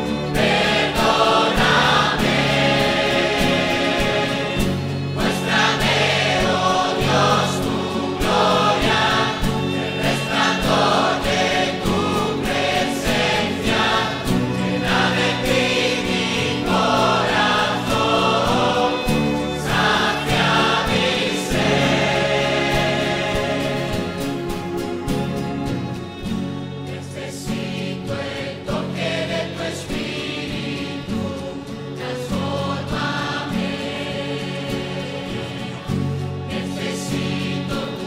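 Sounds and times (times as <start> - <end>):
choir singing: 0.0 - 38.0
steady accompaniment: 0.0 - 38.0.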